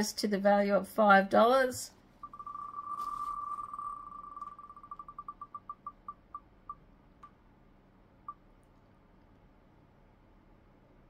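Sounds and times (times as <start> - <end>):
spinning wheel ticking: 2.2 - 6.8.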